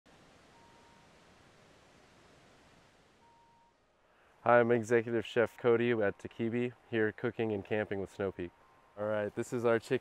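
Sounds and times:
faint steady hiss: 0.1s - 10.0s
short faint tones: 3.1s - 4.5s.

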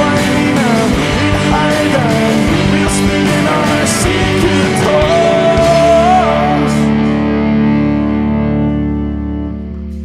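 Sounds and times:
person singing: 0.0s - 7.4s
distorted electric guitar chord ringing: 0.0s - 10.0s.

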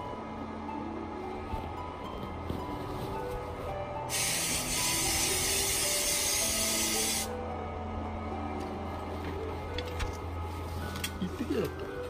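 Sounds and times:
aerosol can spraying hiss: 4.1s - 7.3s.

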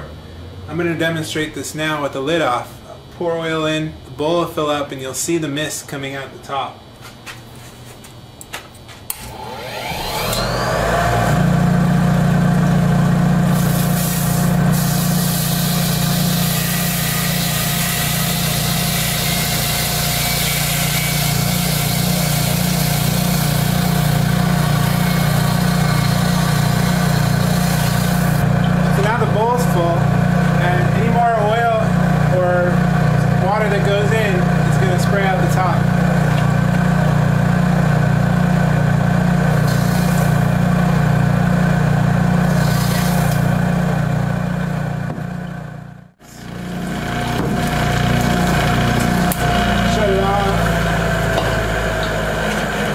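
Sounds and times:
electric motor spinning up: 9.1s - 29.0s, 36.0s - 44.6s, 46.3s - 52.9s.

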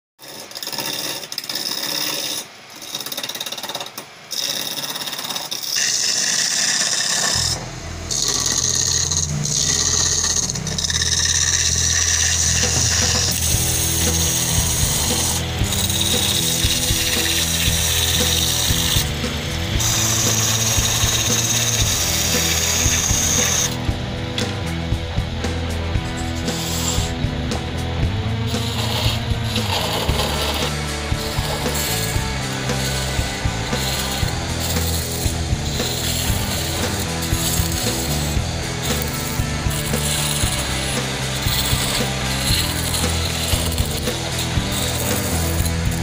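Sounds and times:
chisel scraping turning wood: 0.2s - 23.8s, 26.0s - 27.2s, 28.4s - 46.0s
wood lathe spinning: 0.2s - 46.0s.

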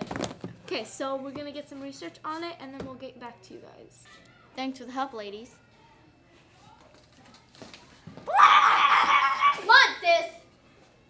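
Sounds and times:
girl screaming: 8.3s - 10.1s.

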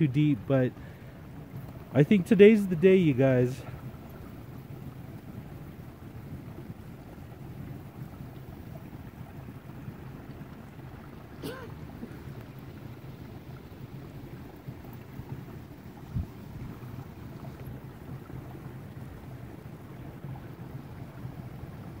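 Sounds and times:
wind rumbling on microphone: 11.8s - 22.0s.

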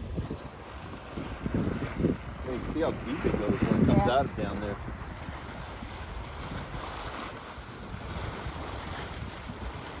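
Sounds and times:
hot spring water bubbling: 0.0s - 10.0s
wind buffeting microphone: 0.0s - 10.0s.

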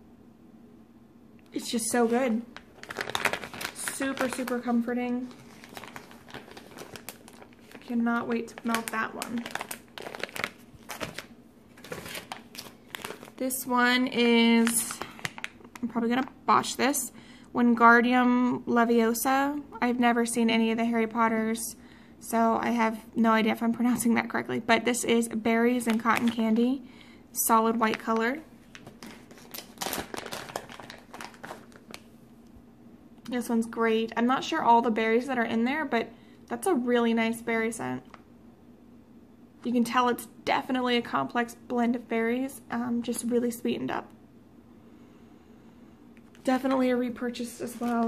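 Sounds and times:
plastic bag crinkling: 1.9s - 16.3s, 25.8s - 26.6s, 27.7s - 32.2s, 46.2s - 48.0s.

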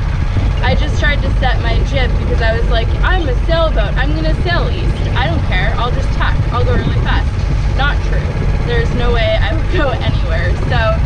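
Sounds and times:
steady low rumble: 0.0s - 11.0s
woman talking: 0.6s - 11.0s.

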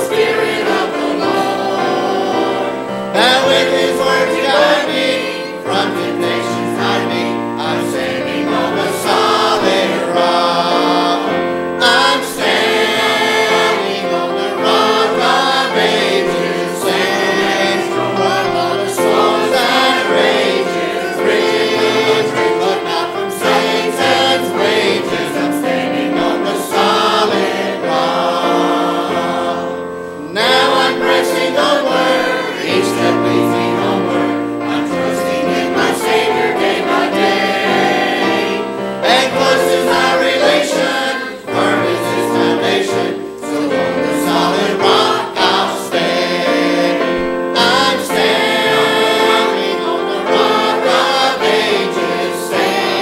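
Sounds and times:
choir singing a hymn: 0.0s - 53.0s
song leader singing: 0.0s - 53.0s.

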